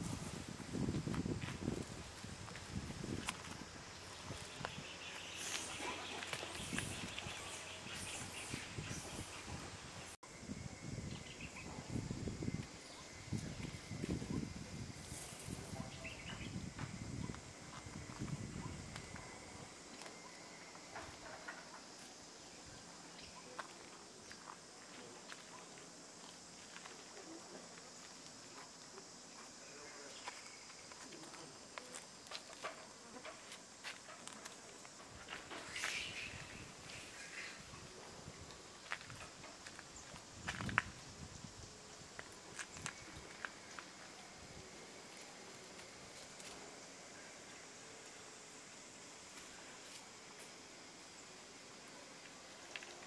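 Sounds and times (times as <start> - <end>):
high-pitched insect buzz: 0.0 - 23.7, 32.2 - 47.7
faint hiss: 0.0 - 53.0.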